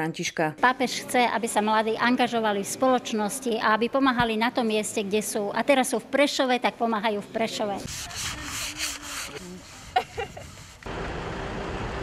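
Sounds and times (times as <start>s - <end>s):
sandpaper rubbing on wood: 7.8s - 10.9s
roadside noise: 9.2s - 12.0s.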